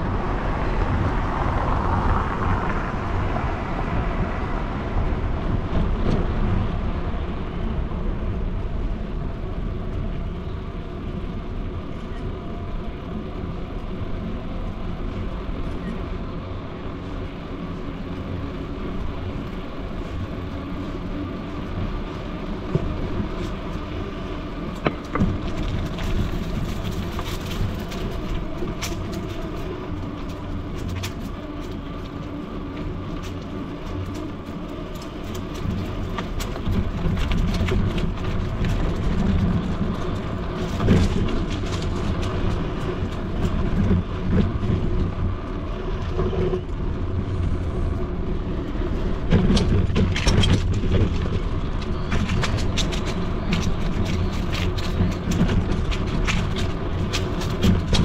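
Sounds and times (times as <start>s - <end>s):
vehicle passing: 0.0s - 50.0s
traffic hum: 0.0s - 58.0s.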